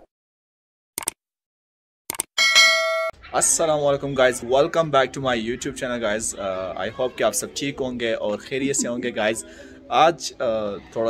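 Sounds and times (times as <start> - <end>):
short clicks: 1.0 - 1.2, 2.1 - 2.3
notification bell ding: 2.4 - 3.2.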